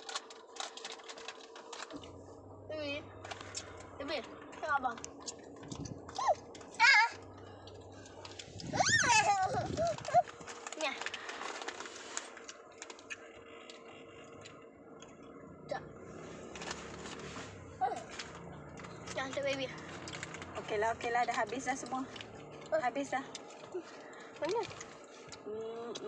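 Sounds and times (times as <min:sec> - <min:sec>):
plastic snack packet rustling: 0:00.0 - 0:02.2, 0:03.1 - 0:14.6, 0:16.2 - 0:25.5
young child calling: 0:08.7 - 0:10.3.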